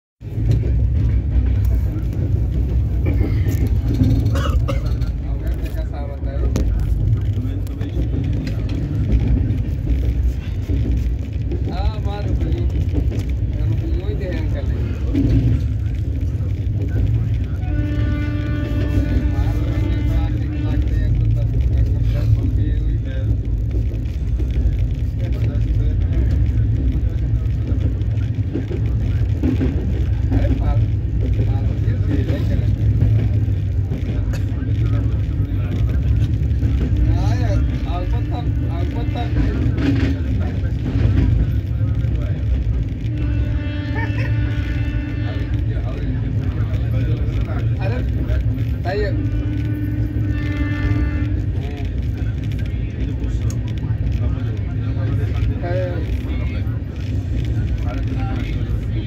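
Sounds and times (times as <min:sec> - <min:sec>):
train rumbling at speed: 0:00.2 - 0:59.0.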